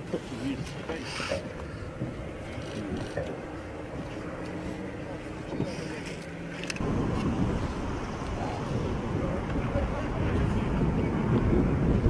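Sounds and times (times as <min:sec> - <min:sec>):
vehicle engine humming: 0:00.7 - 0:12.0
rough engine rumble: 0:01.0 - 0:12.0.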